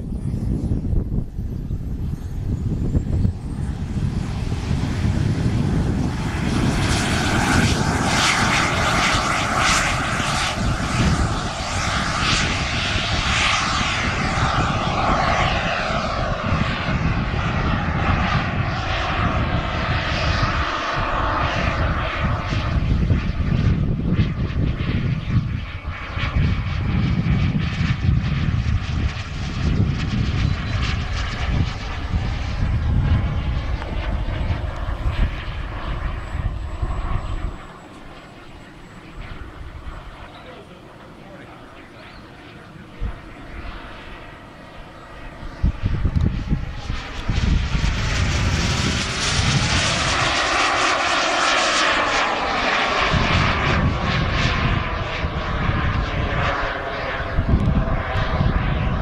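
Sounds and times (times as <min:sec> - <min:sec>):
model jet turbine roar and whine: 0:00.0 - 0:59.0.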